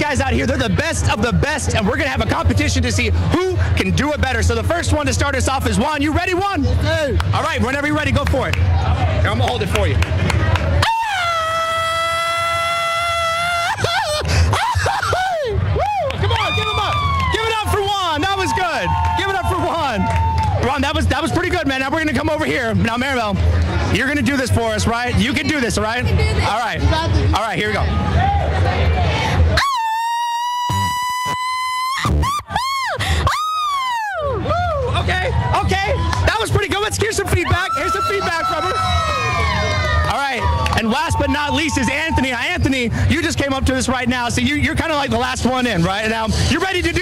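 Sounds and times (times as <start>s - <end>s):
crowd chatter: 0.0s - 47.0s.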